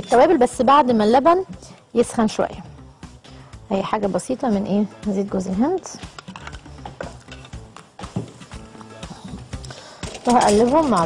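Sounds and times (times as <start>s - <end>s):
soft background music: 0.0s - 11.0s
kitchen utensils clicking and knocking: 6.0s - 8.5s, 9.7s - 11.0s.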